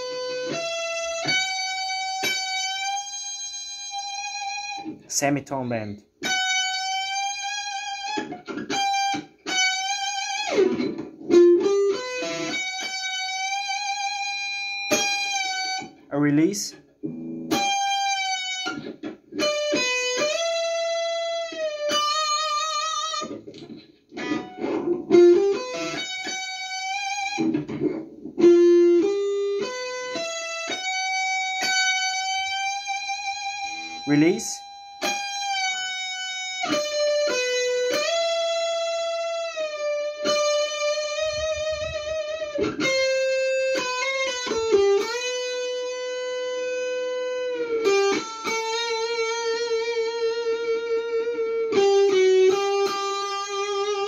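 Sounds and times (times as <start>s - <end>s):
electric guitar solo: 0.0s - 54.0s.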